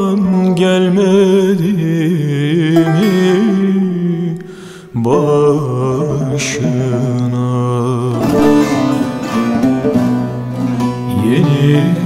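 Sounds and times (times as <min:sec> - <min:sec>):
man singing folk song: 0:00.0 - 0:10.0, 0:10.6 - 0:12.0.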